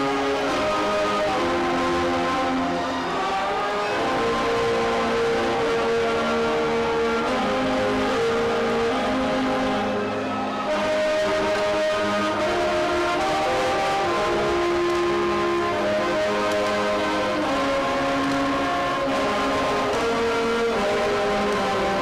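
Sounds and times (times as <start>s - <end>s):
band playing slow chords: 0.0s - 22.0s.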